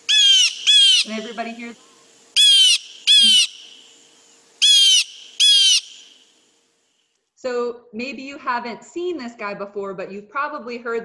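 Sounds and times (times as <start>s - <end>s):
blue jay harsh call: 0.0s - 6.4s.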